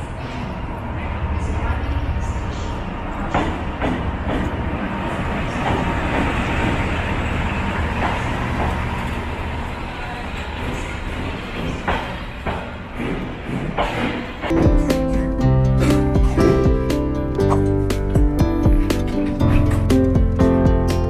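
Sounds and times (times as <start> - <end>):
train rumbling past: 0.0 - 17.2
train wheels clacking: 3.2 - 9.3, 10.4 - 14.7.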